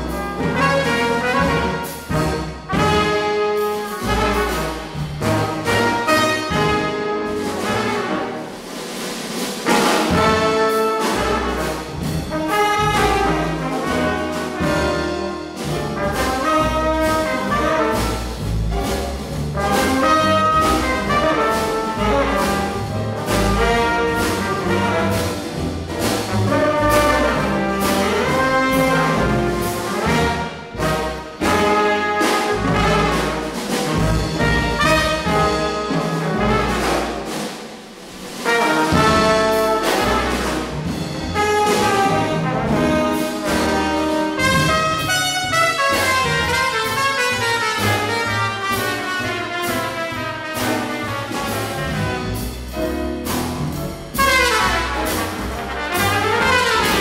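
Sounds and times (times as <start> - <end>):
upright bass: 0.0 - 8.4, 9.7 - 37.4, 38.4 - 57.0
horns playing melody: 0.0 - 9.0, 9.6 - 57.0
drums: 0.0 - 57.0
piano: 0.0 - 57.0.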